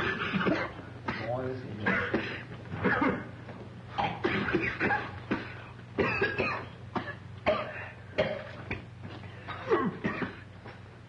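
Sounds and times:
boys coughing: 0:00.0 - 0:08.6, 0:09.5 - 0:10.5.

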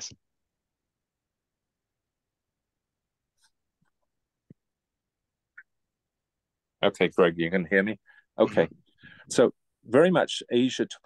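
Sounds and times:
man speaking: 0:06.8 - 0:11.0.

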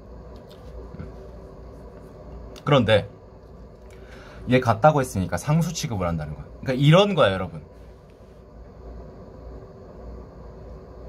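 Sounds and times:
faint room noise: 0:00.0 - 0:11.0
low steady rumble: 0:00.0 - 0:11.0.

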